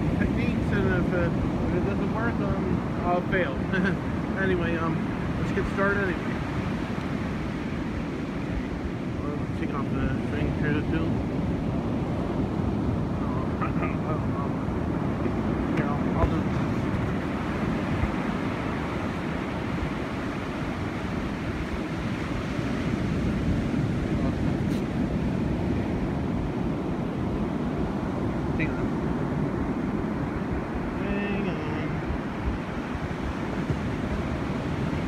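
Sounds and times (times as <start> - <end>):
ocean surf breaking: 0.0 - 35.0
wind on microphone: 0.0 - 35.0.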